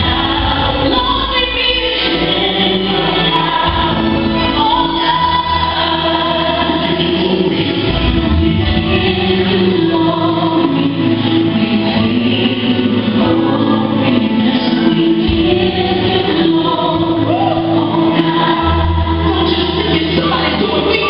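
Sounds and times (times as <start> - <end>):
gospel choir singing: 0.0 - 21.0
held bass line: 0.0 - 21.0.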